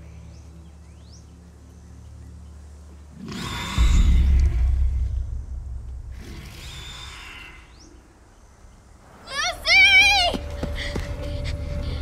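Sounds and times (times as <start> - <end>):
low steady drone: 0.0 - 9.0
deep rumble with rushing hiss: 3.6 - 9.2.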